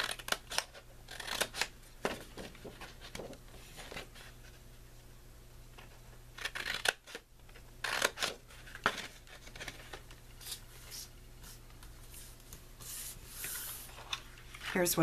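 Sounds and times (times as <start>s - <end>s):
scissors snipping cardstock: 0.0s - 1.7s.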